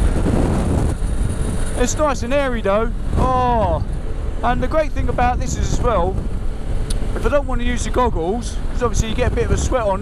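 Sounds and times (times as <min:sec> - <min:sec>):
road noise: 0:00.0 - 0:10.0
wind buffeting microphone: 0:00.0 - 0:10.0.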